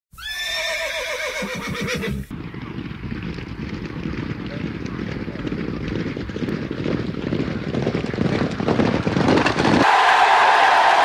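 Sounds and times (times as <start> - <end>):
horse whinnying: 0.1 - 2.3.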